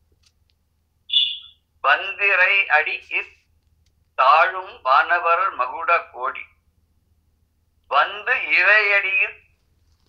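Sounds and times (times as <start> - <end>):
high-pitched whistle-like sound: 1.1 - 1.6
man reciting verse: 1.1 - 3.4, 4.2 - 6.5, 7.9 - 9.4.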